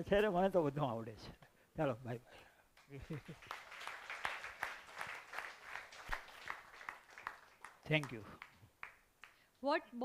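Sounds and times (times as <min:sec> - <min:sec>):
audience applauding: 0:02.8 - 0:09.4.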